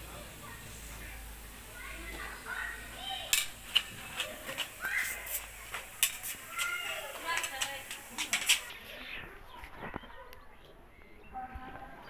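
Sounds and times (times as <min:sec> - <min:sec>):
small child's high-pitched voice: 0:01.7 - 0:03.4, 0:04.2 - 0:05.6, 0:06.2 - 0:07.5, 0:09.2 - 0:10.8.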